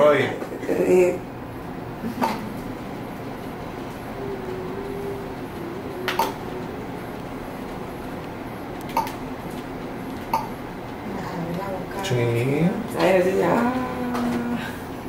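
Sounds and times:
faint low hum: 0:00.0 - 0:14.8
steady background hiss: 0:00.0 - 0:15.0.

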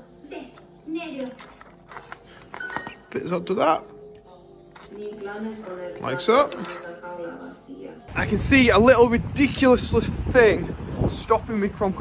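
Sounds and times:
background music: 0:00.0 - 0:09.8.

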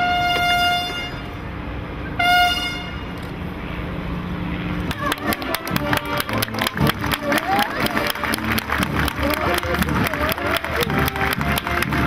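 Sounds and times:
loud horn-like tone: 0:00.0 - 0:01.4, 0:02.2 - 0:03.2.

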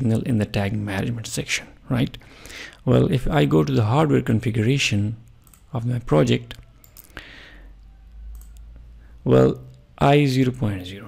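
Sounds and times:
computer mouse clicks: 0:05.3 - 0:05.7, 0:06.5 - 0:07.2, 0:07.8 - 0:09.8.

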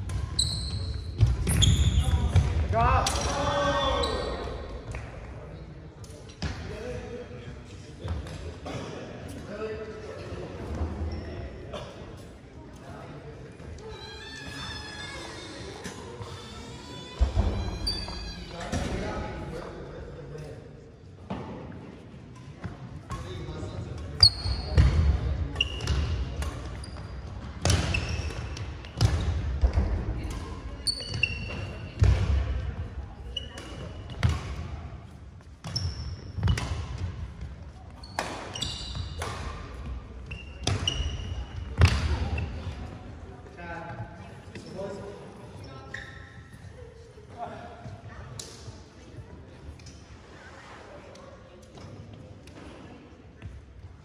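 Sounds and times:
sneaker squeaks: 0:00.0 - 0:04.7, 0:10.6 - 0:12.3, 0:13.6 - 0:19.0, 0:22.4 - 0:32.4, 0:33.2 - 0:34.8, 0:35.4 - 0:43.0, 0:44.2 - 0:47.0.

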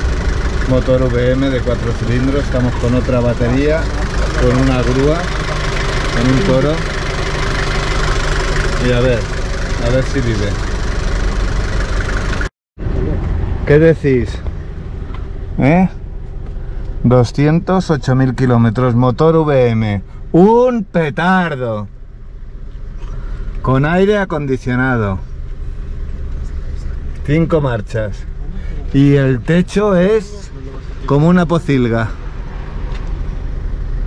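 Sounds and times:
diesel engine idling: 0:00.0 - 0:32.6.

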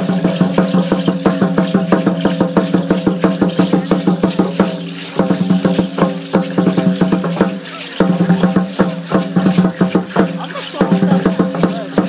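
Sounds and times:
drum beaten in fast rhythm: 0:00.0 - 0:12.0
seed-pod ankle rattles shaking: 0:00.0 - 0:12.0.

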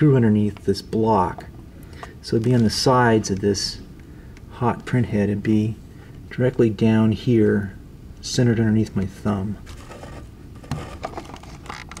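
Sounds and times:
small clicks and scrapes: 0:09.7 - 0:12.0.

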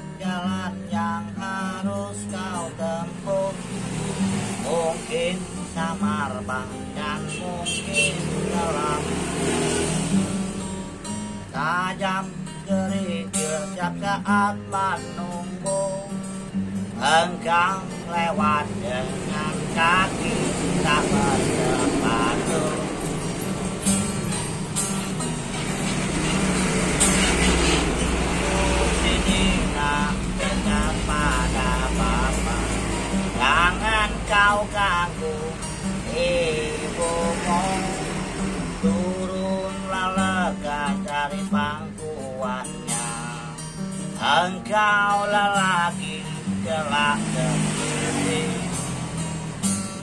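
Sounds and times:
fingerpicked classical guitar: 0:00.0 - 0:50.0
low rumble of road traffic: 0:00.0 - 0:50.0.

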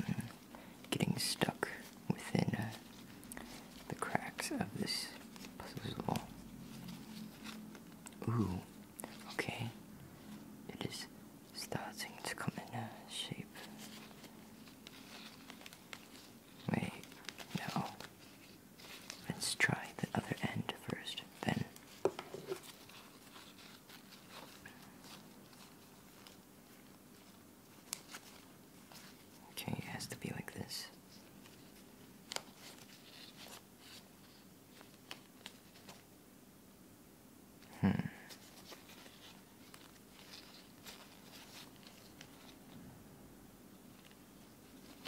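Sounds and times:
latex gloves rubbing: 0:13.4 - 0:29.4, 0:31.0 - 0:36.0, 0:38.3 - 0:42.8.

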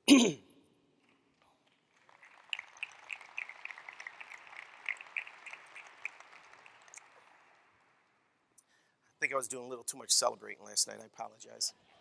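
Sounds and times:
audience applause: 0:01.8 - 0:08.2.

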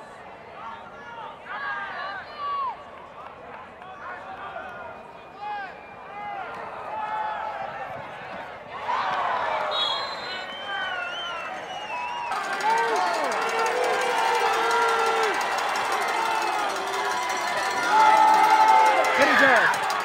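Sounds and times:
crowd yelling and cheering: 0:00.0 - 0:20.0.

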